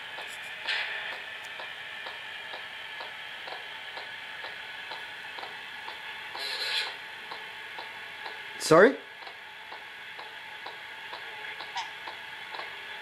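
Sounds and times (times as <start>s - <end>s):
static hiss from speakers: 0.0s - 13.0s
regular clicking: 9.2s - 12.7s.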